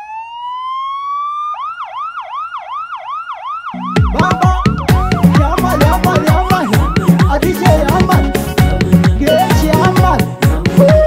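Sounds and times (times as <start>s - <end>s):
police siren wailing and yelping: 0.0s - 8.3s
dance music beat: 3.8s - 11.0s.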